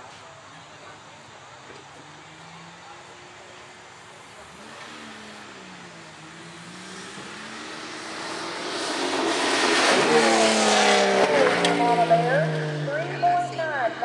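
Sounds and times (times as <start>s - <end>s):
engine revving hard: 4.5s - 13.5s.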